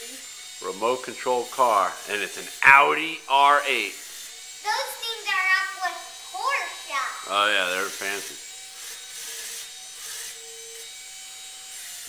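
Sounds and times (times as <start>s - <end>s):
toy car suction fan whirring: 0.0s - 12.0s.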